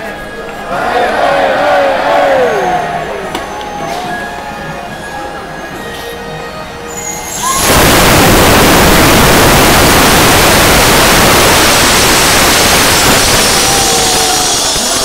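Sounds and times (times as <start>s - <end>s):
balloons whistling: 2.5s - 9.2s, 11.5s - 15.0s
rush of escaping air: 7.2s - 15.0s.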